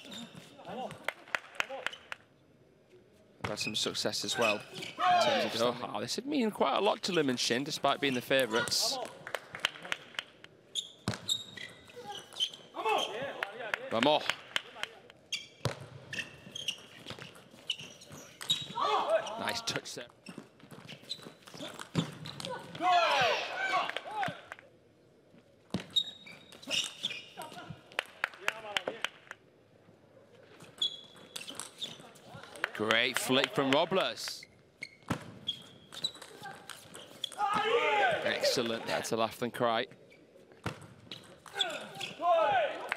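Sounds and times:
shoes squeaking on floor: 0.0 - 0.7, 3.5 - 5.5, 7.0 - 8.9, 10.7 - 13.4, 15.3 - 22.8, 25.7 - 27.8, 30.6 - 32.4, 34.3 - 37.6, 39.9 - 42.3.

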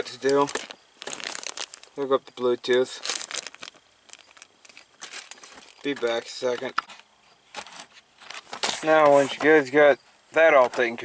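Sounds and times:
plastic bag crinkling: 0.0 - 9.4.

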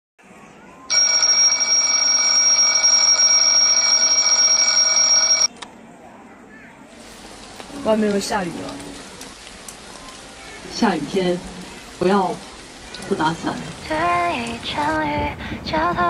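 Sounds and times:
alarm clock bells ringing: 0.9 - 5.5
rain falling: 7.0 - 16.0.

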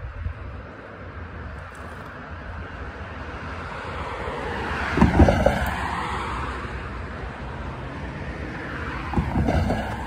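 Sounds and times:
car passing: 0.4 - 10.0.

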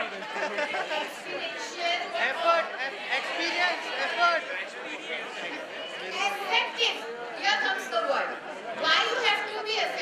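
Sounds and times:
woman lecturing over loudspeakers: 8.8 - 10.0.

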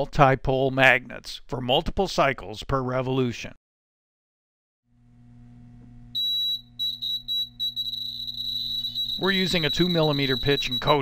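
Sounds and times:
low steady hum: 5.0 - 11.0
high-pitched electronic beeps: 6.2 - 11.0.

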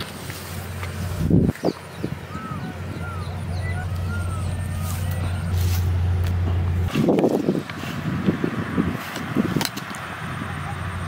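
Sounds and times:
steady low rumble: 0.0 - 11.0
faint bird chirps: 1.5 - 5.6.

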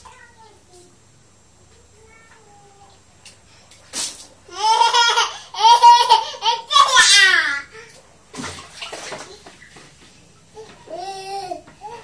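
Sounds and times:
water splashing on tiled floor: 8.3 - 10.1.

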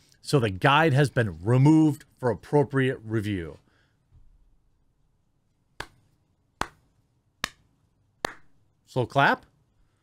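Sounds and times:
single hand claps: 5.8 - 6.0, 6.6 - 6.8, 7.4 - 7.6, 8.2 - 8.6.

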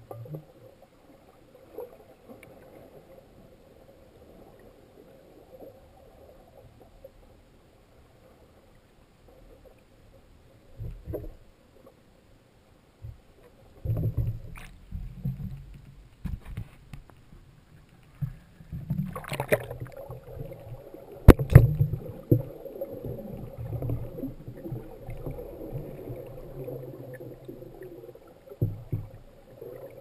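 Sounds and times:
faint steady hum: 0.0 - 30.0
underwater rumbling and sloshing: 0.0 - 30.0.

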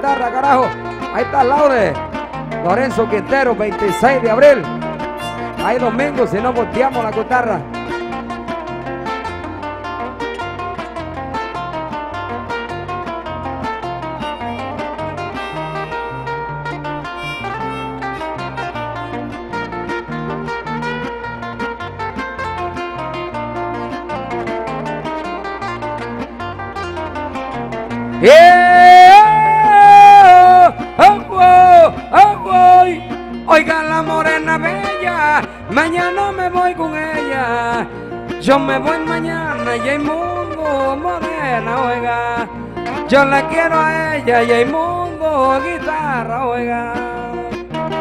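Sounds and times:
acoustic guitars plucking: 0.0 - 48.0
man singing long held notes: 28.2 - 48.0.

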